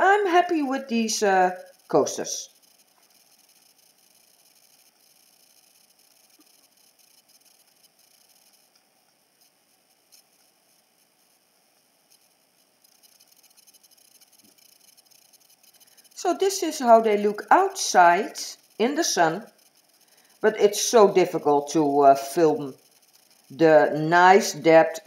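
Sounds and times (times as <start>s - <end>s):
faint room hiss: 0.0s - 25.0s.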